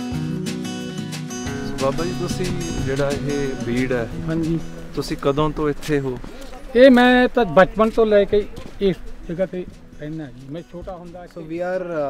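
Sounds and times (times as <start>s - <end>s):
man talking: 1.6s - 12.0s.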